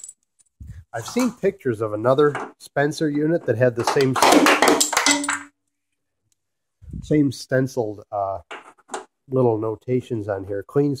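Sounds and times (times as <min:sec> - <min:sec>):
person speaking: 0:00.6 - 0:04.3, 0:06.8 - 0:08.5.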